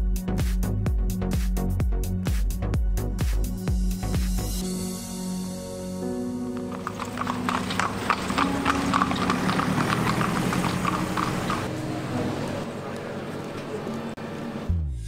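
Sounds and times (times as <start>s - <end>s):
background music: 0.0s - 12.8s
horse hooves clip-clopping on road: 6.6s - 11.7s.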